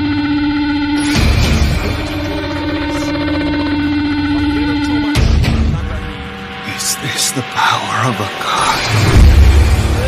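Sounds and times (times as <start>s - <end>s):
loud droning tone: 0.0s - 6.6s.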